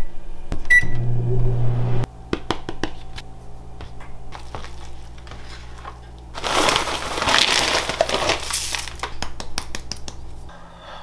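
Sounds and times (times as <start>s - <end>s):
dry cornflakes crunching: 4.3s - 9.2s.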